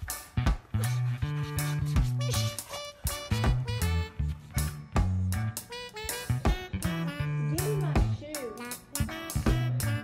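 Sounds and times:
upbeat swing music: 0.0s - 10.0s.

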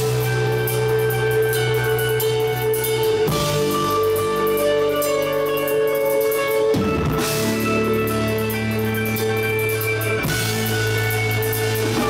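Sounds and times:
drum kit with cymbals: 0.0s - 12.0s
electric guitar and bass chord: 0.0s - 12.0s.

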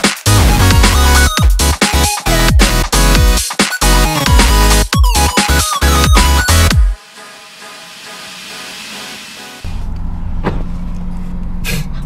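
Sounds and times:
electronic music with hiss: 0.0s - 9.6s
car engine and road rumble: 9.6s - 12.0s.

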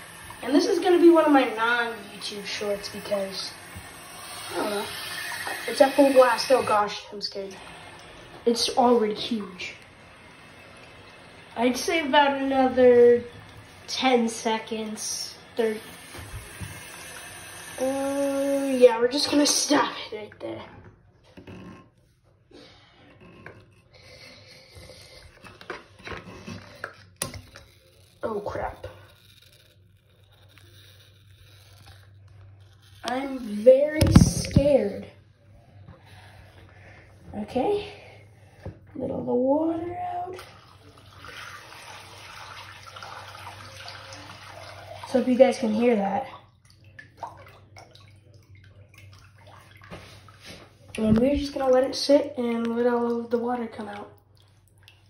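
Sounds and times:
water splashing into sink: 0.0s - 20.6s, 33.0s - 35.1s, 40.0s - 55.0s
water drips: 40.3s - 55.0s.

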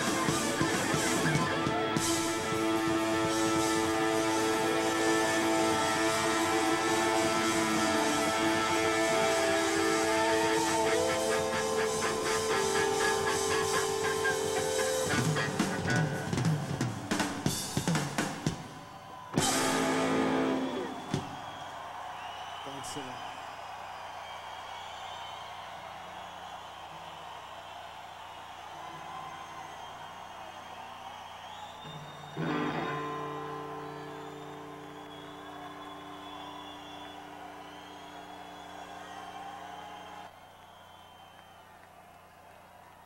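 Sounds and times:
electric guitar chords: 0.0s - 17.6s, 19.4s - 21.2s, 32.4s - 37.5s
drums and cymbal hits: 0.0s - 21.6s.

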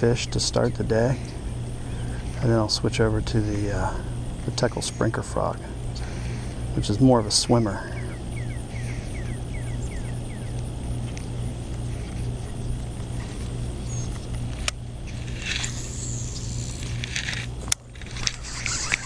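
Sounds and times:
fishing reel spool whirring: 0.0s - 19.0s
steady low rumble: 0.0s - 19.0s
reel clicks: 14.1s - 19.0s.

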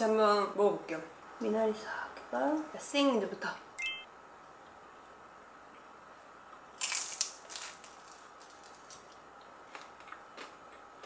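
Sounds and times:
soft chewing crunches: 6.5s - 11.0s
crisp bite into dumpling: 6.8s - 10.5s.

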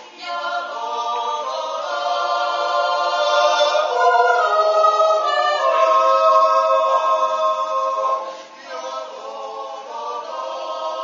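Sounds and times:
choir yodeling a cappella: 0.0s - 11.0s.

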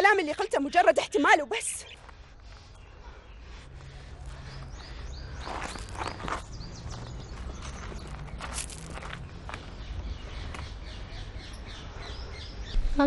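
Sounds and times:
footsteps scuffing on a path: 5.1s - 10.8s.

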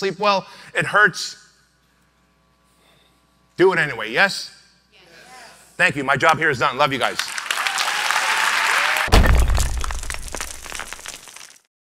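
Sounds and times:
deep impact hit with crackling: 9.1s - 11.3s.

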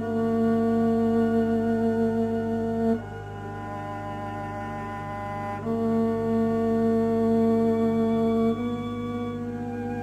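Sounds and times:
string quartet sustained note: 0.0s - 10.0s.

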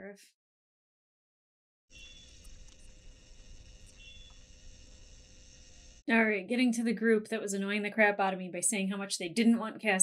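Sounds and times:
electronic whirring: 1.9s - 6.1s
steady hum: 2.0s - 6.7s.

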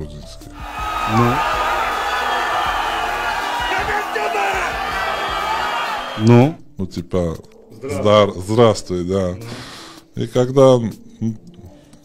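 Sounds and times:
crowd shouting and cheering: 0.6s - 6.6s.

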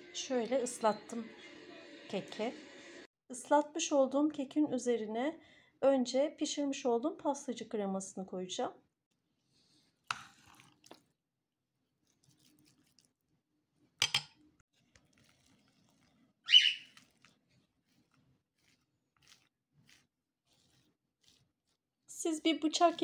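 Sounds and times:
scraper hissing scrape: 16.8s - 21.8s.

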